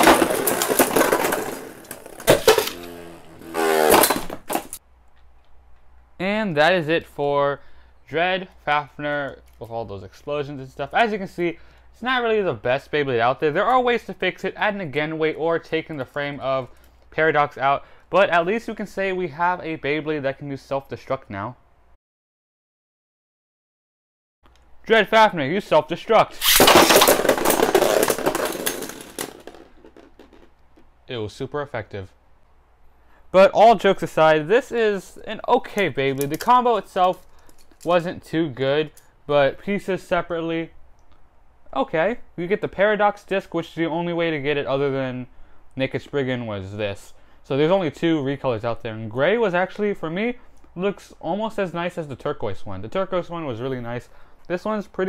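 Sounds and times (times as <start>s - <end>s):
spinning top bursting with clacks: 26.3s - 30.6s
whirring rattle of spinning pieces: 26.4s - 30.5s.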